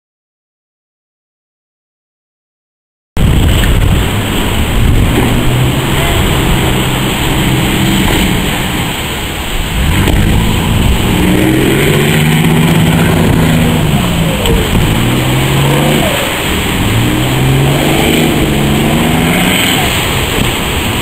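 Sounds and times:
boat engine revving: 3.2 - 21.0
surf rushing: 3.2 - 21.0
wind: 3.2 - 21.0.

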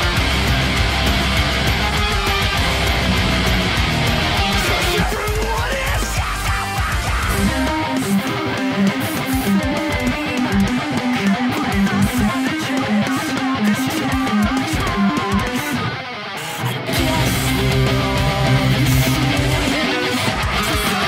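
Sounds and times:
distorted electric guitar riff: 0.0 - 21.0
metal backing track: 0.0 - 21.0.

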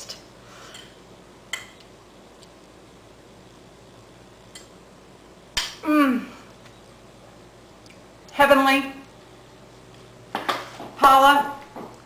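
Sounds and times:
woman humming: 5.8 - 6.5.

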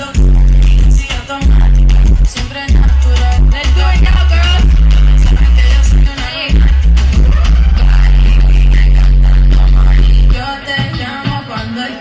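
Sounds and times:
deep bass note: 6.6 - 10.3.

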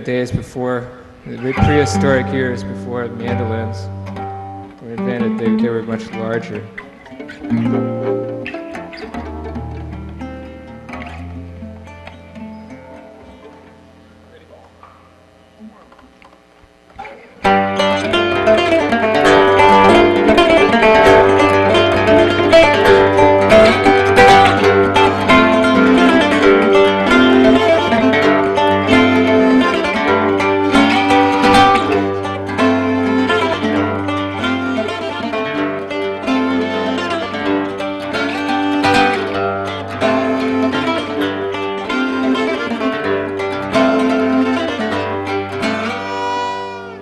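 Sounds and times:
bowed fiddle melody: 1.3 - 14.3, 17.4 - 47.0
plucked mandocello notes: 1.3 - 14.9, 17.0 - 47.0.

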